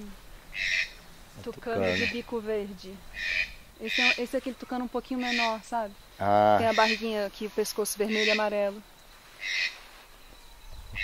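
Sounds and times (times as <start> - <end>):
quiet outdoor background: 0.0 - 11.0.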